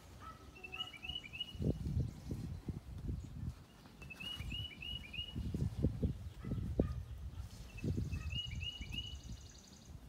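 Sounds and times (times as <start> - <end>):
small bird chirping: 0.4 - 2.6, 3.2 - 10.0.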